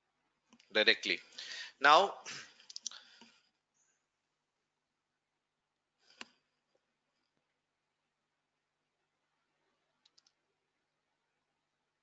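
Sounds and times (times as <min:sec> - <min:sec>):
computer mouse clicks: 0:10.0 - 0:10.4.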